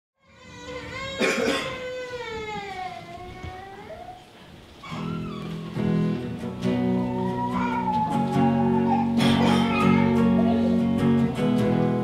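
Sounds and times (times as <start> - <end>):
person coughing: 1.2 - 1.8, 9.2 - 9.8.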